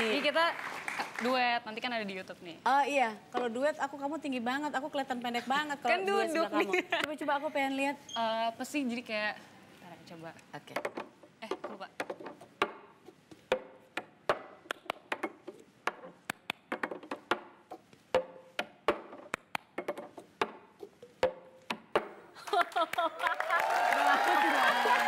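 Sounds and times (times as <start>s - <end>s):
plastic cup tapping on wooden table: 10.7s - 22.2s.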